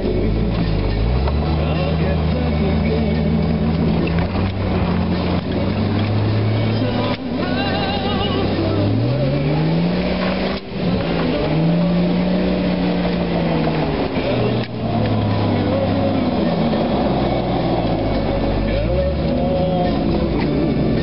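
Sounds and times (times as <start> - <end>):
engine revving under load: 0.0 - 21.0.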